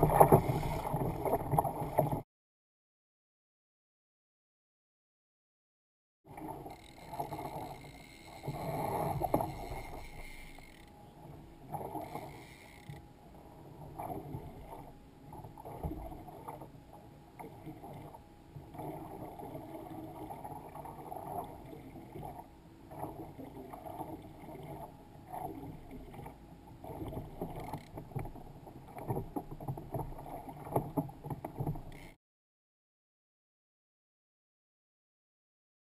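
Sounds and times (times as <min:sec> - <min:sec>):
waves lapping against kayak hull: 0:00.0 - 0:02.2, 0:06.3 - 0:32.2.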